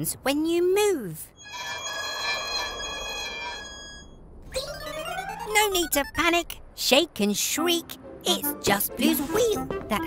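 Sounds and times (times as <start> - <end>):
squeaky wheel squeal: 1.4 - 4.2.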